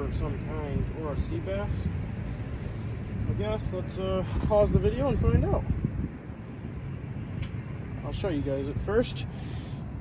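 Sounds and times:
distant highway traffic rumble: 0.0s - 10.0s.

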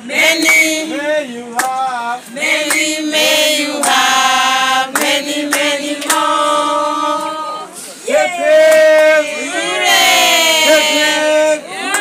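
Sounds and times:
group singing long notes: 0.0s - 12.0s.

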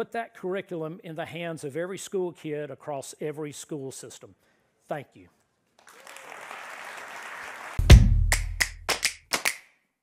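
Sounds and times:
audience applauding: 5.8s - 9.6s
deep bass hit: 7.8s - 8.6s
sharp percussion strikes: 7.8s - 9.5s.

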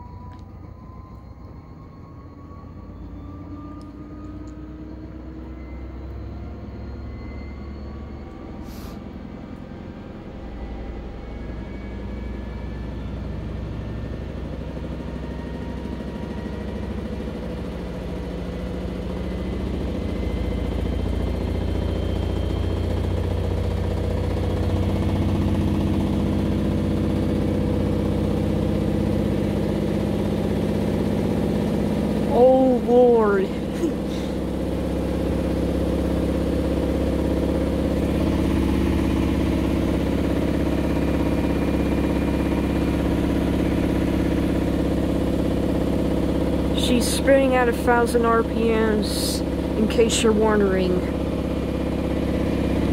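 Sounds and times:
washing machine spinning: 0.0s - 52.9s.

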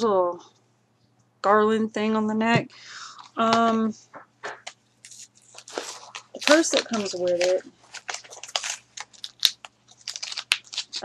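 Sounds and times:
packaging rustling and clicking: 4.4s - 11.0s.

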